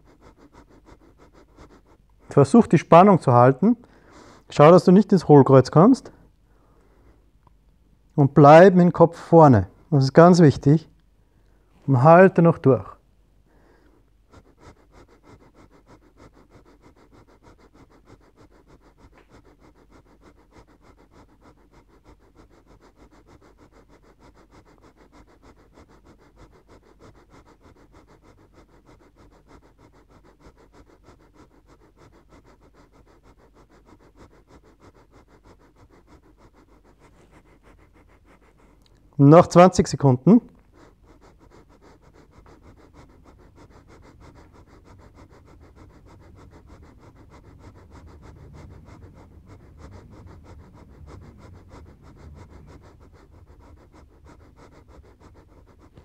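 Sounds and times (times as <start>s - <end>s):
man breathing rapidly through nose: 0.0s - 7.4s, 8.4s - 56.0s.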